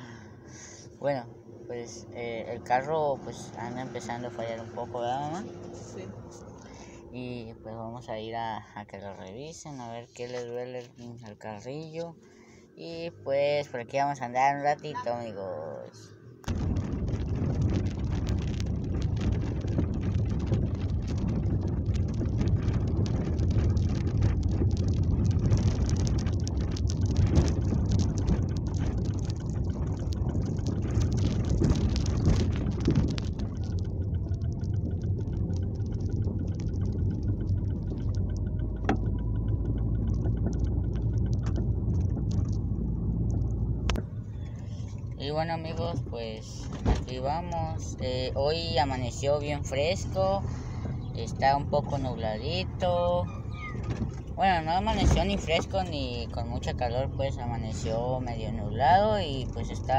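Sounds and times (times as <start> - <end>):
engine and road rumble: 0.0 - 59.9
rattles and knocks: 16.5 - 45.2.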